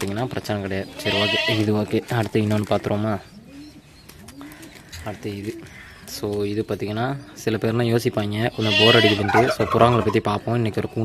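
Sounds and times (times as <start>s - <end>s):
pigeon cooing: 2.7s - 6.2s.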